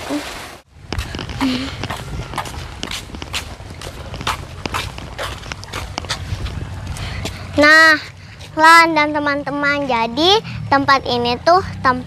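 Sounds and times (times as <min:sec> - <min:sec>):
footsteps on concrete: 0:00.8 - 0:07.5.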